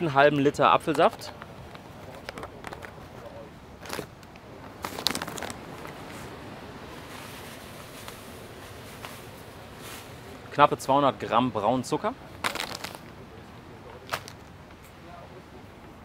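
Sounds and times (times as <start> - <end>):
low background hiss: 0.0 - 16.0.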